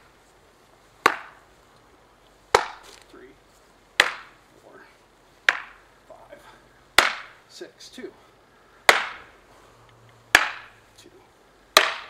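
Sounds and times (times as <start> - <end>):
practice swords clashing: 1.0 - 1.4, 2.5 - 3.0, 4.0 - 4.4, 5.5 - 5.8, 7.0 - 7.4, 8.9 - 9.4, 10.3 - 10.8, 11.8 - 12.0.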